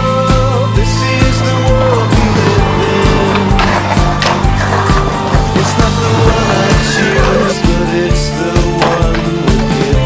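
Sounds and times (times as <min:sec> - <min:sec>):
music with steady beat: 0:00.0 - 0:10.0
skateboard wheels rolling on pavement: 0:01.4 - 0:07.8.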